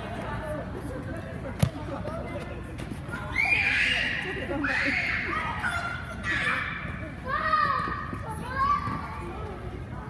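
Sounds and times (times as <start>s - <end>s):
children shouting: 3.2s - 9.0s.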